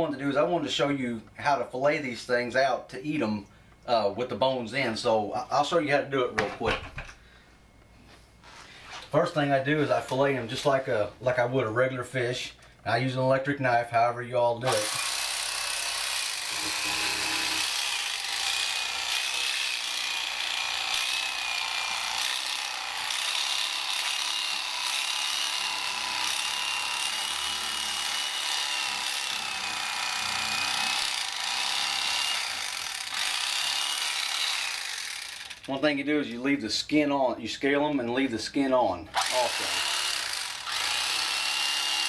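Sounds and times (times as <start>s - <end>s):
electric fillet knife buzzing: 14.7s - 35.7s, 39.2s - 42.0s.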